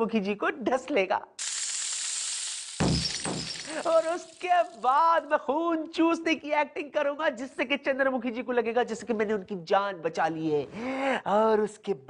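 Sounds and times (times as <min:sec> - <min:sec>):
crash-like hit: 0:02.7 - 0:04.0.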